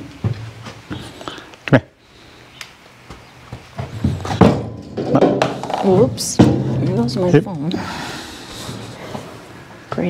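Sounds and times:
horse hooves shifting on floor: 0.0 - 1.4, 3.0 - 7.8.

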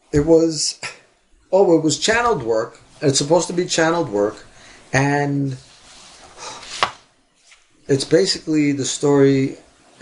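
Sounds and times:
breath drawn in: 5.7 - 7.0.

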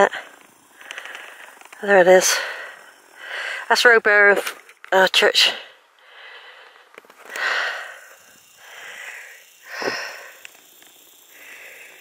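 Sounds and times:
person breathing: 0.1 - 1.6, 2.2 - 3.7, 5.5 - 10.5, 11.2 - 12.0.

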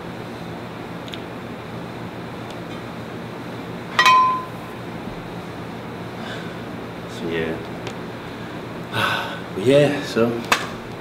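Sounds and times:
glass trophy clink: 4.0 - 4.7.

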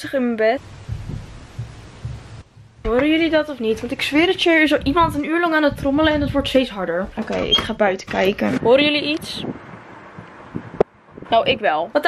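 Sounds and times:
muffled drumming: 0.6 - 8.8.

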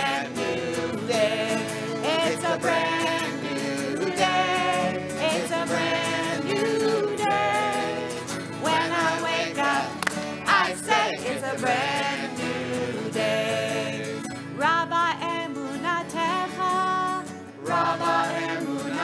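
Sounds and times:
group singing folk song: 0.0 - 19.0
strummed acoustic guitars: 0.0 - 19.0.

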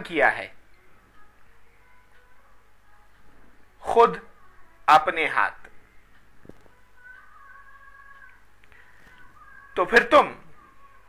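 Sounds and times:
speech: 0.0 - 0.5, 3.8 - 4.3, 4.9 - 5.6, 9.8 - 10.4
low steady room hum: 0.0 - 11.0.

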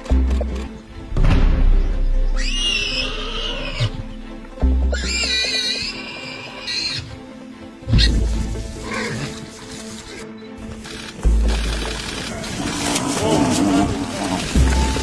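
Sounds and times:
background music with bass booms: 0.0 - 6.0, 7.0 - 15.0.

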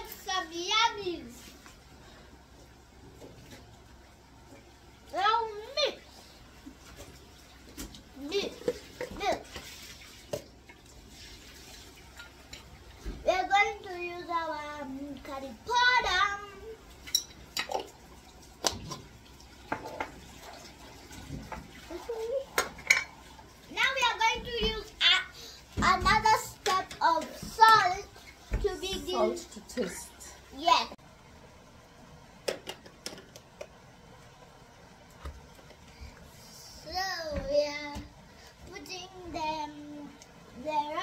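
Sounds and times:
faint kitchen room noise: 0.0 - 41.0.

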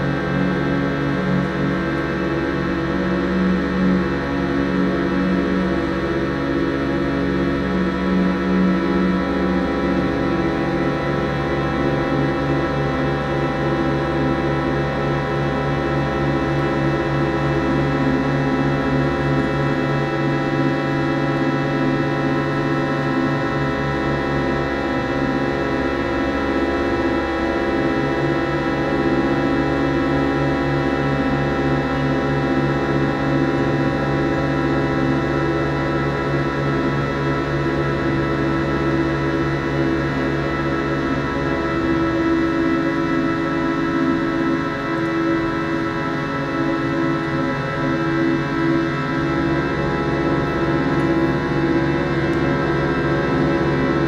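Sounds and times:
ensemble drone music: 0.0 - 54.0.

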